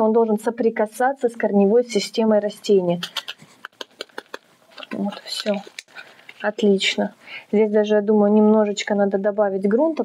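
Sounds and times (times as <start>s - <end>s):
plastic cup clicking and crackling: 3.0s - 6.6s.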